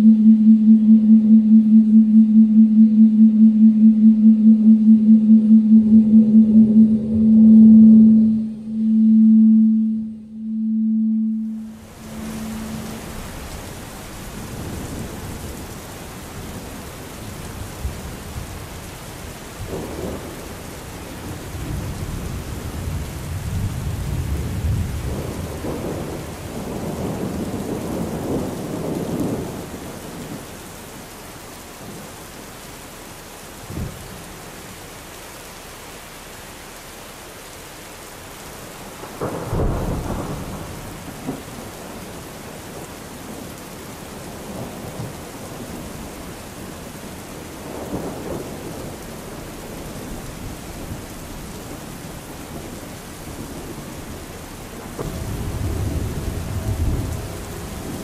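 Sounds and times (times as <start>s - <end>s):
low pulsing electronic tone: 0.0s - 13.3s
thunderstorm-like rain noise: 0.0s - 58.0s.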